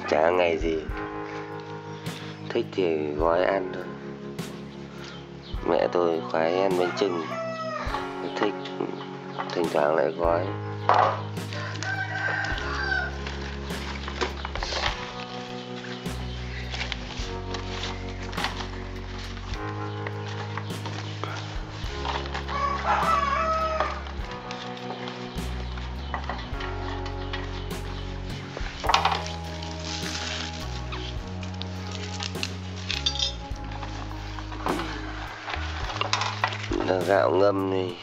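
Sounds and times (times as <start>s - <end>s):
background music with bass line: 0.0s - 38.0s
leaves rustling and clicking: 5.8s - 38.0s
rooster crowing: 6.4s - 8.0s, 11.5s - 13.2s, 22.5s - 24.0s.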